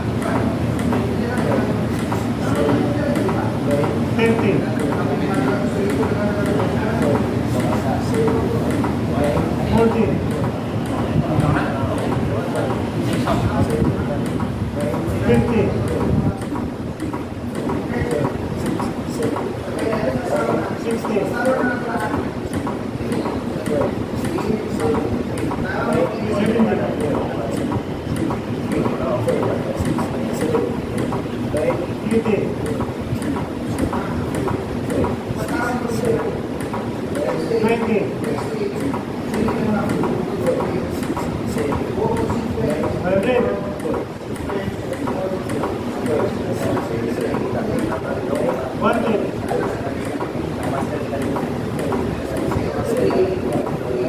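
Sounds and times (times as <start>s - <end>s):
faint clicks of chest compressions: 0.0s - 54.0s
people talking: 0.0s - 54.0s.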